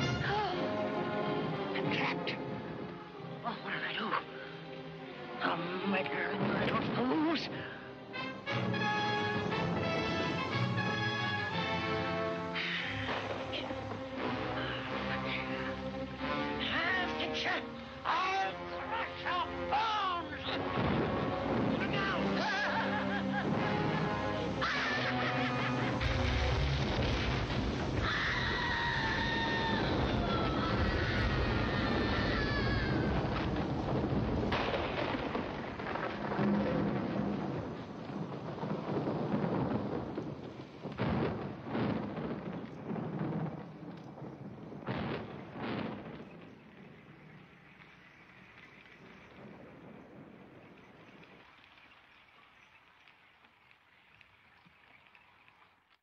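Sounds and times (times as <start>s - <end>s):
rain: 0.0s - 56.0s
thunderclaps: 20.5s - 53.0s.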